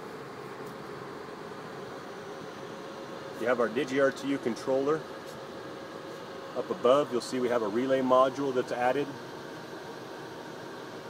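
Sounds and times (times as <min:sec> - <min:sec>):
background hiss and hum: 0:00.0 - 0:11.0.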